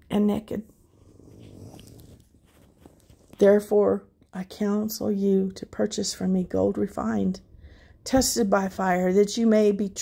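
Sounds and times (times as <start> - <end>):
page turning rustle: 1.2 - 3.6.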